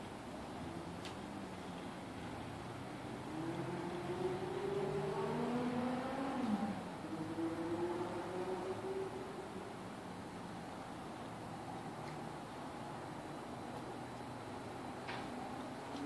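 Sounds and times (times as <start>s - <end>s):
vehicle passing by: 2.2s - 9.8s.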